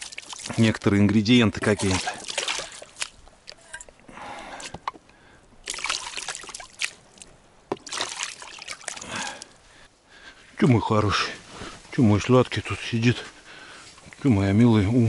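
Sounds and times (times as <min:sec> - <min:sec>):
water pouring and splashing: 0:00.0 - 0:04.0, 0:05.6 - 0:09.5.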